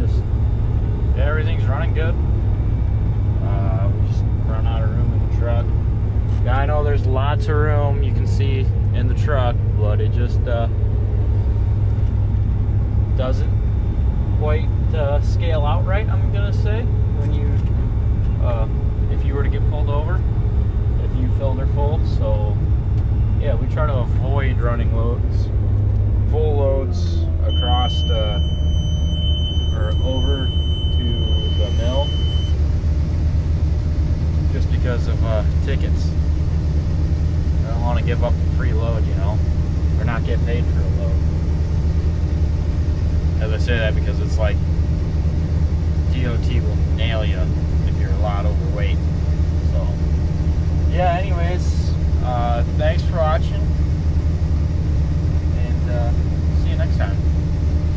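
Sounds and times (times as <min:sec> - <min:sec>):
combine engine drone in cab: 0:00.0 - 0:57.9
high-pitched beeping tone: 0:27.4 - 0:32.6.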